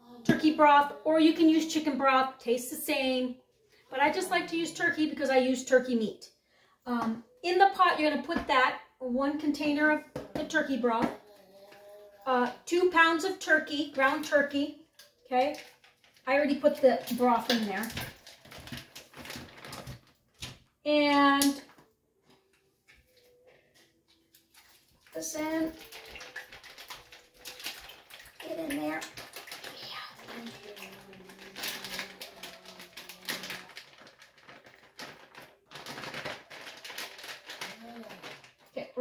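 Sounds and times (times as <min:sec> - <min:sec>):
plastic packaging crinkling: 0:15.0 - 0:20.7, 0:23.2 - 0:38.7.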